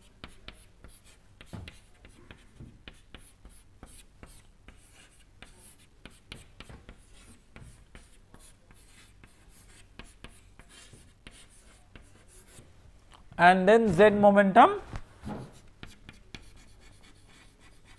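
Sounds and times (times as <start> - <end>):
chalk tapping and scratching on chalkboard: 0.0 - 12.7, 15.4 - 17.9.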